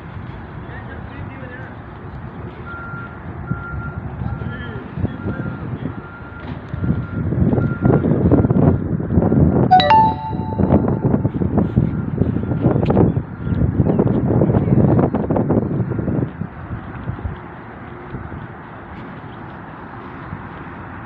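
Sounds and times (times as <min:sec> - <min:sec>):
wind rumble on microphone: 0:06.6 - 0:09.7, 0:10.6 - 0:21.0
brief pitched sound: 0:09.7 - 0:11.4.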